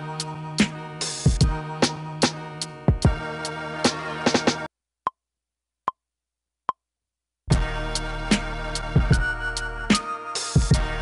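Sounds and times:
hip-hop beat: 0.0 - 4.7, 7.5 - 11.0.

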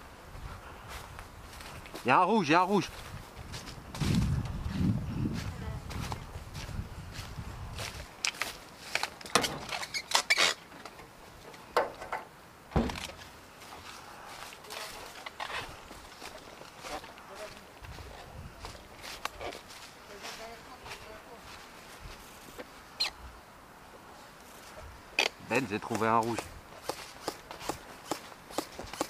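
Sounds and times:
footsteps crunching dry leaves: 0.3 - 9.2, 13.1 - 23.0, 25.5 - 28.8.

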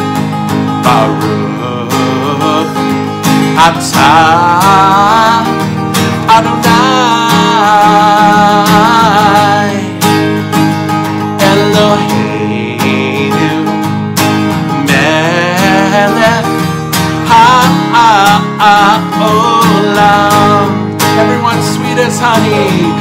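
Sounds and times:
acoustic guitar strumming: 0.0 - 23.0
man singing: 0.8 - 10.4, 11.1 - 23.0.

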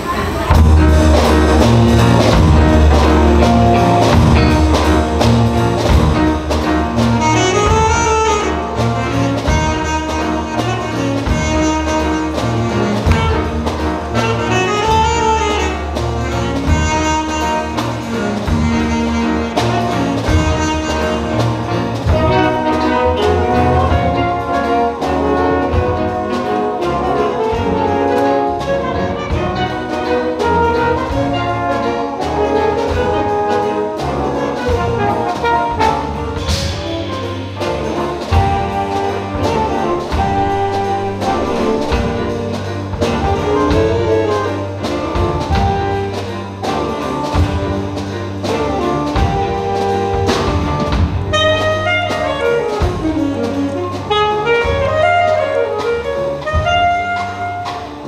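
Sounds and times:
jazz band playing: 0.0 - 58.0.

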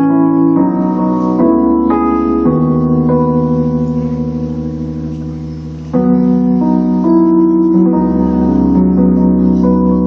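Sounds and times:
electric piano chords: 0.0 - 10.0.

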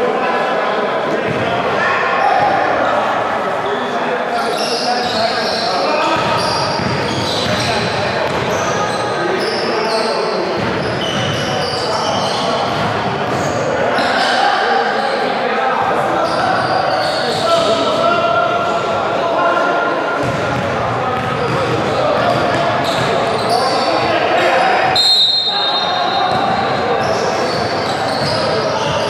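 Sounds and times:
chatter of players' voices: 0.0 - 29.0
basketballs bouncing on hardwood: 6.2 - 8.5.

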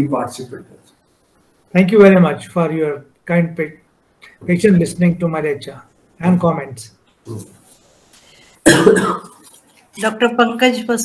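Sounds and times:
person coughing: 8.6 - 9.4.

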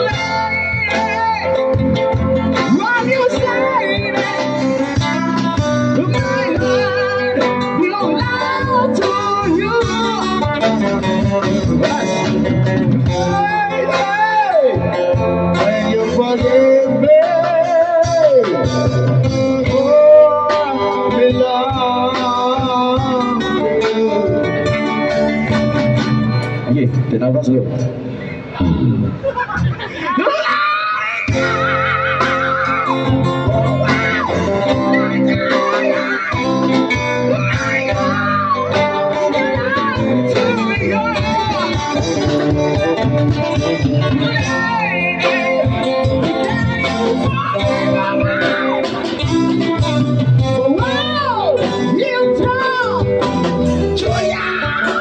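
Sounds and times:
acoustic and electric guitars: 0.0 - 55.0
men singing into microphones: 2.6 - 25.2, 29.9 - 55.0.

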